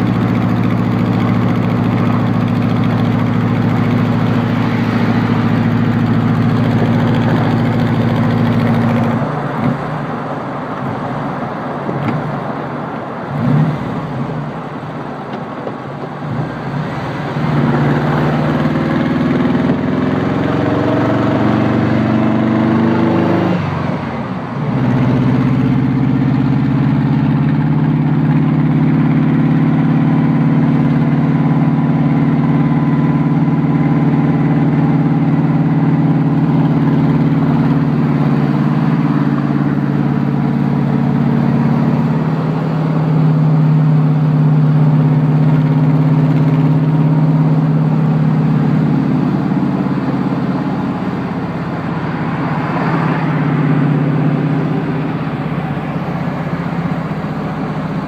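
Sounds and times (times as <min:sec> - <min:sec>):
car engine accelerating: 0:00.0 - 0:58.0
road noise inside car: 0:00.0 - 0:58.0.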